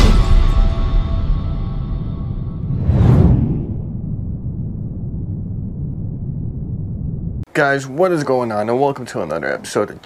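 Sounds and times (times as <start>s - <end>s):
low rumble: 1.4s - 7.5s
whoosh and boom hit: 1.9s - 6.0s.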